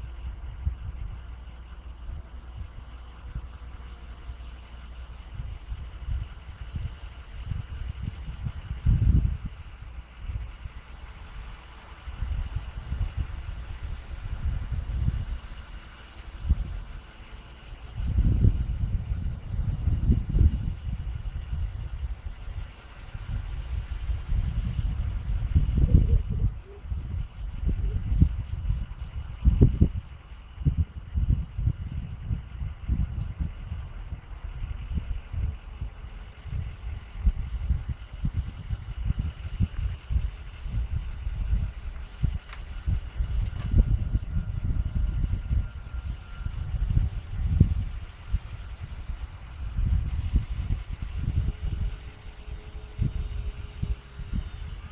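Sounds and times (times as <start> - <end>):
thin high motor whine: 0.0 - 54.9
wind buffeting microphone: 0.0 - 54.9.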